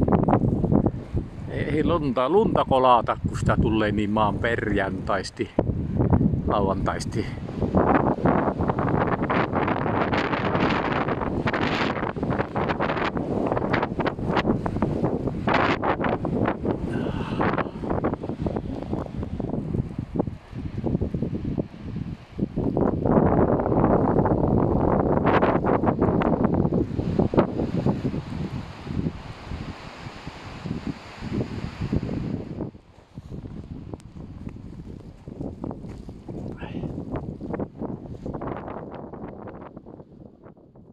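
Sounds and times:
wind buffeting microphone: 0.0s - 40.9s.

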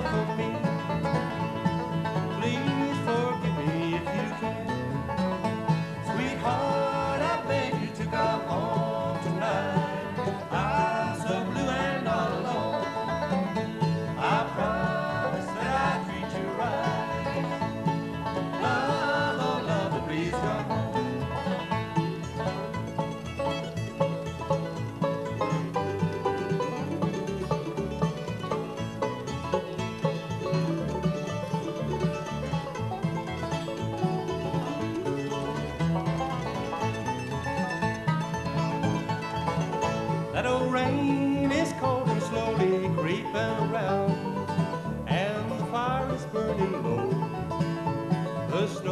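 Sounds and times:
bluegrass band playing: 0.0s - 48.9s.

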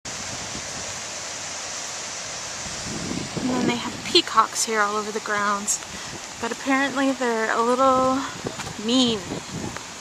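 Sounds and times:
water pouring down cascade: 0.1s - 10.0s.

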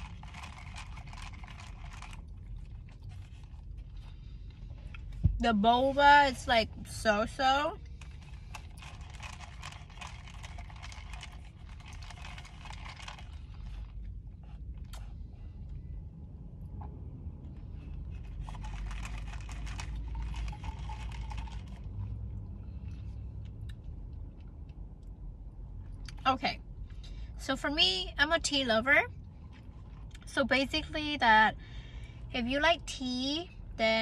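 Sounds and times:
chewing tapioca pearls: 0.0s - 5.1s, 7.8s - 15.2s, 17.8s - 25.1s
low steady rumble: 0.0s - 34.0s.

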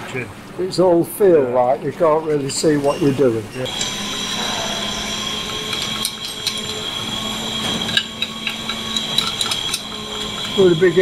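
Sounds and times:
machine whine with hum: 3.4s - 11.0s
metallic clicks and scrapes: 7.7s - 10.6s.

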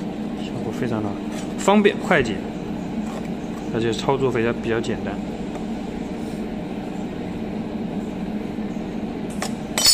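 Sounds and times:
mechanical hum: 0.0s - 9.9s.

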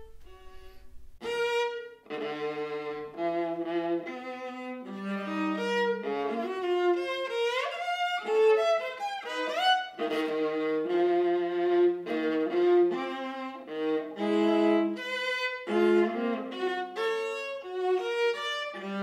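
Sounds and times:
solo viola bowed: 0.0s - 19.0s.

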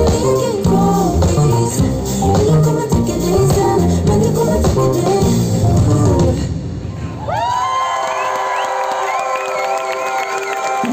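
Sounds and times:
band music: 0.0s - 6.7s
crowd cheering: 7.1s - 10.9s.

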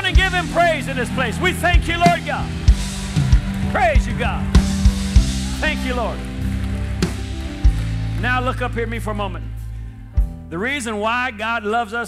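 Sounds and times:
band playing low chords: 0.0s - 11.6s
drum hits: 1.8s - 8.4s.

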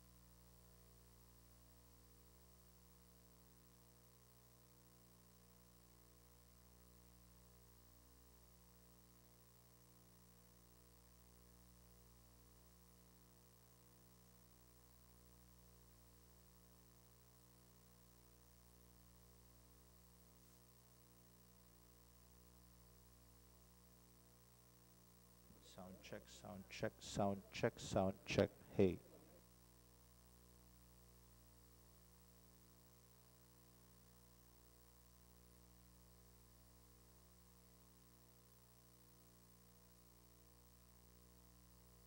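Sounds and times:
faint electrical mains hum: 0.0s - 42.0s
person speaking sound check: 25.5s - 29.4s.

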